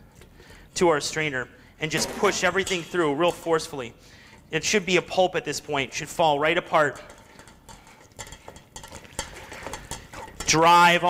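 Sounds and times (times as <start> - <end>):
spoon scraping a strainer: 6.8 - 11.0.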